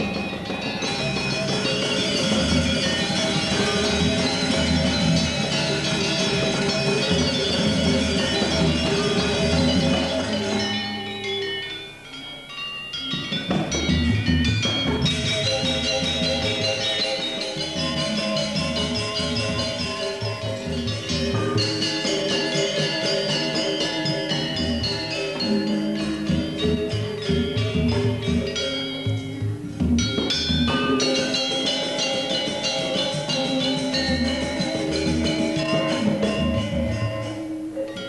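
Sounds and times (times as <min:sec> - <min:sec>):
gamelan orchestra playing: 0:00.0 - 0:38.0.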